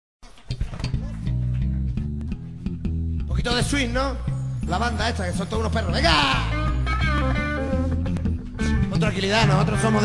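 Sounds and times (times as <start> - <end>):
guitar: 0.2 - 10.0
deep bass guitar notes: 0.5 - 10.0.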